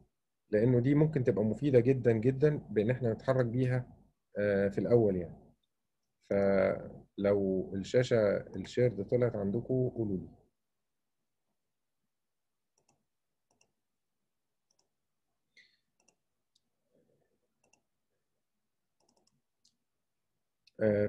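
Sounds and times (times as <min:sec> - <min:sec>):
man speaking: 0:00.5 - 0:05.4, 0:06.3 - 0:10.4, 0:20.7 - 0:21.0.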